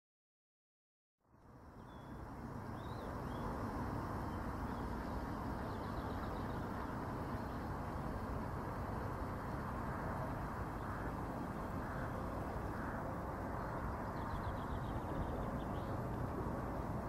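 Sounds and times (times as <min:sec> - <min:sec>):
outdoor background noise: 0:01.2 - 0:17.0
faint bird chirps: 0:01.7 - 0:03.6.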